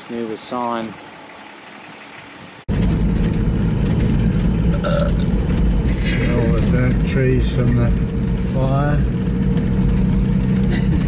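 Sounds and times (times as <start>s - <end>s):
engine and road noise inside car: 2.7s - 11.0s.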